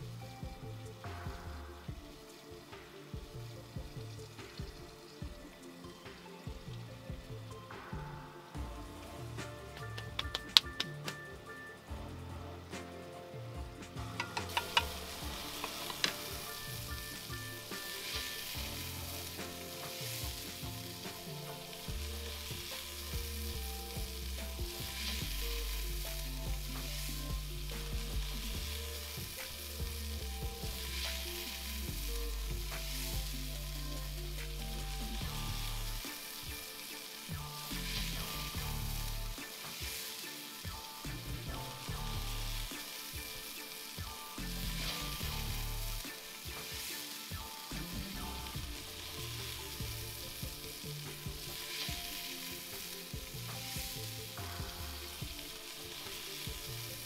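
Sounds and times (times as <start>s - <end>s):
meat sizzling in hot oil: 13.9s - 57.0s.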